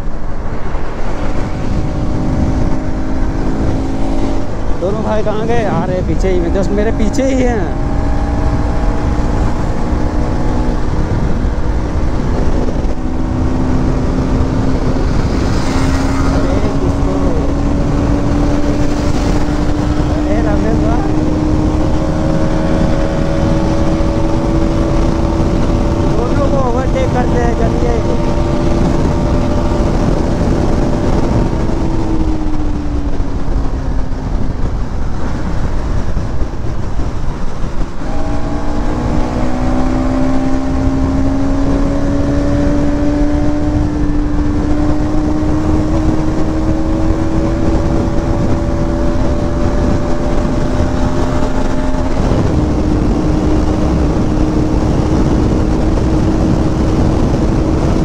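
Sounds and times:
motorcycle engine at high revs: 0:00.0 - 0:58.0
wind noise: 0:00.0 - 0:58.0.

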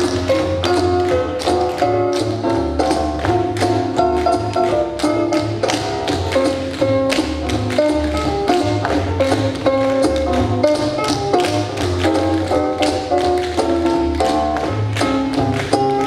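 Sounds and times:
music with melody and bass: 0:00.0 - 0:16.0
tap shoes clicking on floor: 0:00.0 - 0:16.0.

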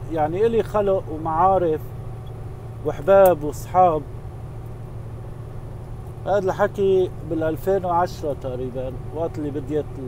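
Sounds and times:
road and engine rumble in cab: 0:00.0 - 0:10.0.

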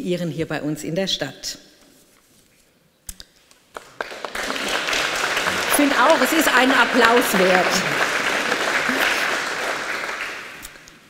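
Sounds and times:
audience applause: 0:03.7 - 0:11.0.

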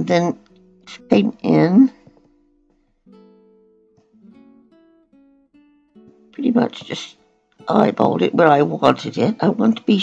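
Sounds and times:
acoustic guitar plucked notes: 0:00.0 - 0:10.0.

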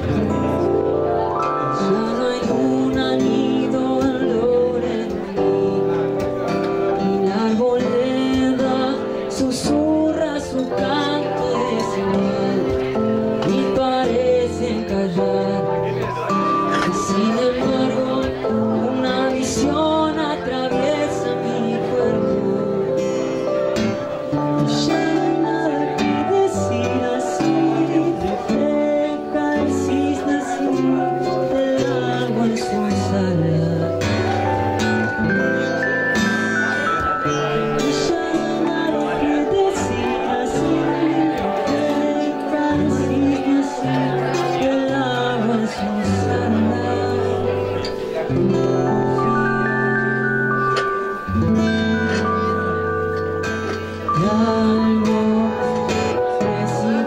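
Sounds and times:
acoustic guitar: 0:00.0 - 0:57.0
electronic keyboard: 0:00.0 - 0:57.0.

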